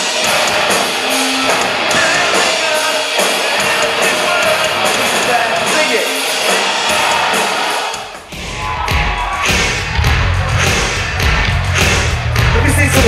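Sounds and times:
drum hits: 0:00.0 - 0:13.0
live industrial rock band: 0:00.0 - 0:13.0.

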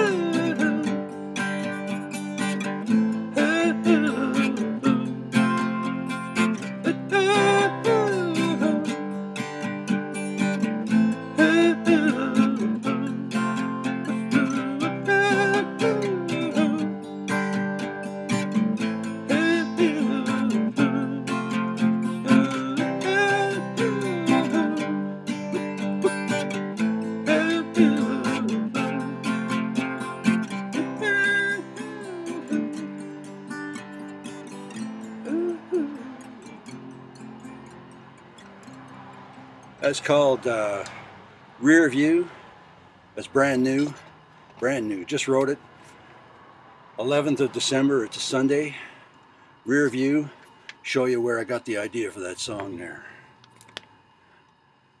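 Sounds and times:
solo guitar playing: 0:00.0 - 0:42.3, 0:43.2 - 0:54.8.

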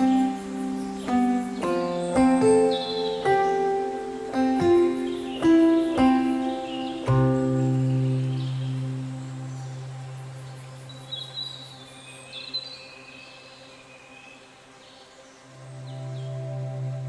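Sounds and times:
ambient drone music: 0:00.0 - 0:17.0
bird chirps: 0:00.0 - 0:17.0.

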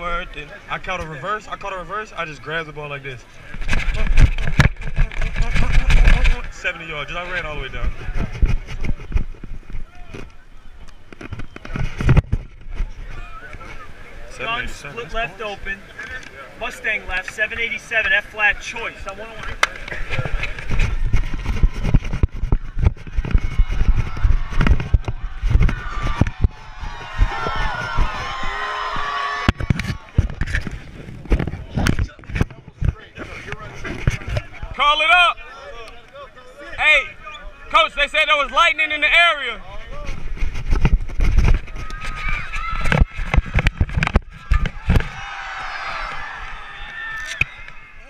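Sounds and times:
crowd shouting and talking: 0:00.0 - 0:48.0
thumps and rubbing on camera: 0:03.4 - 0:10.4, 0:11.0 - 0:14.7, 0:17.2 - 0:35.0, 0:39.8 - 0:45.3
wind rumble on microphone: 0:03.5 - 0:13.9, 0:19.8 - 0:34.8, 0:39.7 - 0:46.4.

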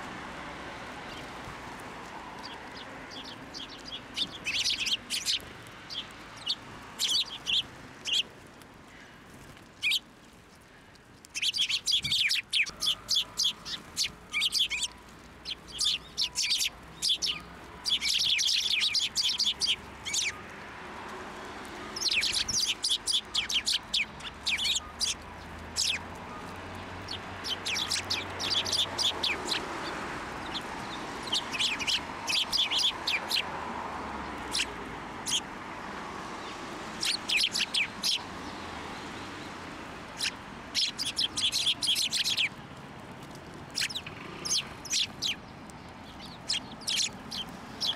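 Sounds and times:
sparrows chirping: 0:00.8 - 0:47.9.

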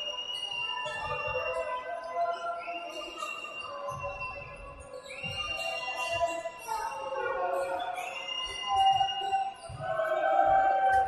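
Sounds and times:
voices echoing: 0:04.6 - 0:11.0.

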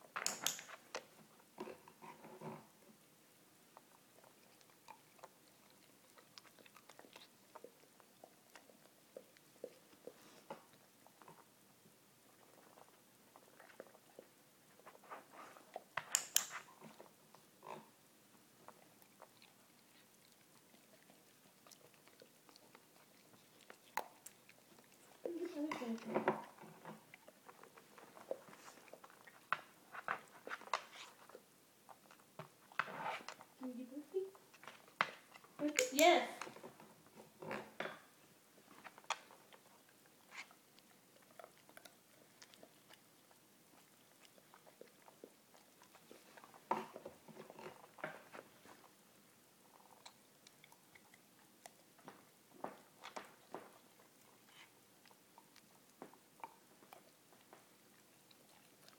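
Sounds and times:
dog paws tapping on wooden floor: 0:52.0 - 0:54.1.

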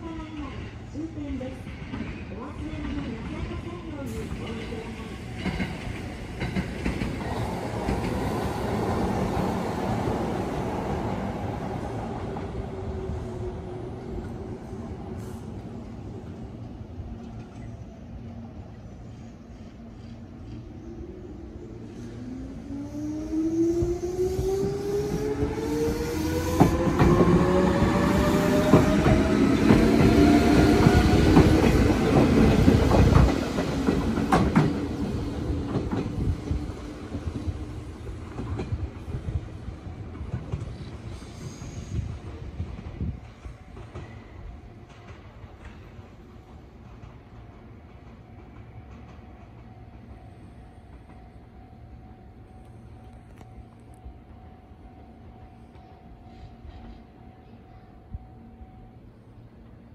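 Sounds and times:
train rumble: 0:00.0 - 0:59.9.

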